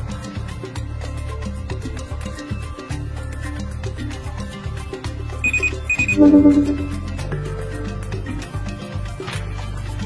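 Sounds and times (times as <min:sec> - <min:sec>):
background music with beat: 0:00.0 - 0:10.0
high electronic beeps: 0:05.4 - 0:07.1.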